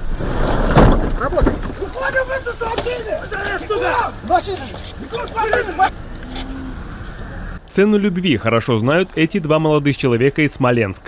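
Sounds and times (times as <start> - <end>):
street and traffic noise: 0.0 - 11.0
voices: 1.1 - 11.0.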